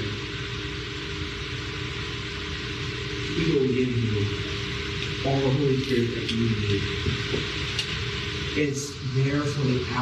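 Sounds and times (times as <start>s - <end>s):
room noise hum and hiss: 0.0s - 10.0s.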